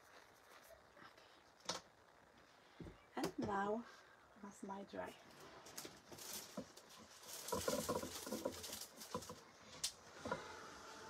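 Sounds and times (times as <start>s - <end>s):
craft supplies rustling and clicking: 5.6s - 10.0s.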